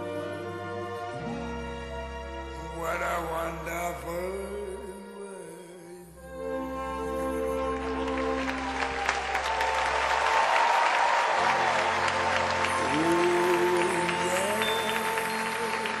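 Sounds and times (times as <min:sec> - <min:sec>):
audience applauding: 0:07.6 - 0:16.0.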